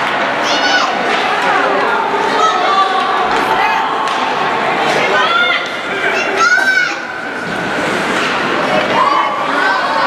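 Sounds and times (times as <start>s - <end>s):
crowd chatter: 0.0s - 10.0s
children shouting: 0.2s - 7.3s, 8.8s - 10.0s.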